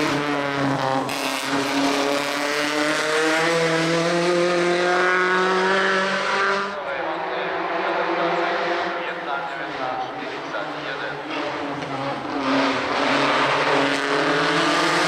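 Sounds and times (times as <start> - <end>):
race car engine accelerating: 0.0 - 15.0.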